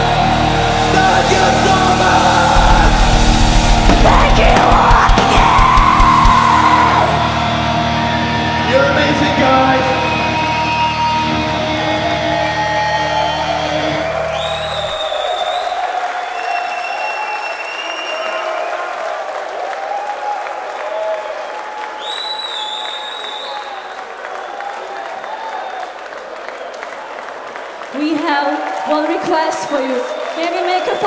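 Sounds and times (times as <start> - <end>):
high rising tones: 0.0 - 8.8
crowd cheering and applauding: 0.0 - 31.0.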